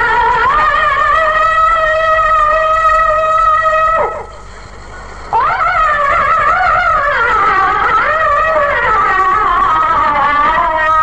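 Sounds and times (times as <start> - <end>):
man chanting unaccompanied: 0.0 - 4.4, 5.4 - 11.0.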